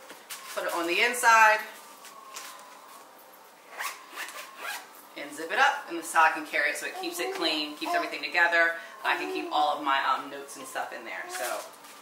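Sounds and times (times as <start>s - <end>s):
zipper being pulled closed: 3.7s - 4.9s.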